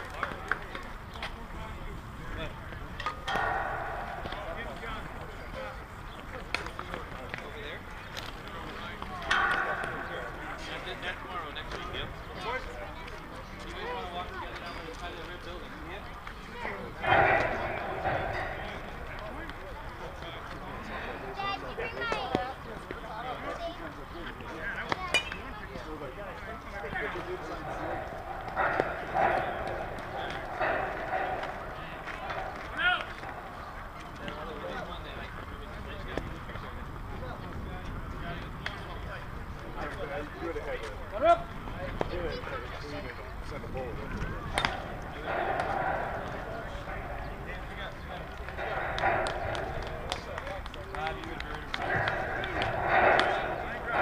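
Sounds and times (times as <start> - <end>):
distant chatter: 0.0 - 54.0
players shouting: 2.8 - 6.8, 8.1 - 14.7, 16.0 - 23.5, 24.3 - 35.0, 44.0 - 54.0
sharp knocks: 48.3 - 50.5.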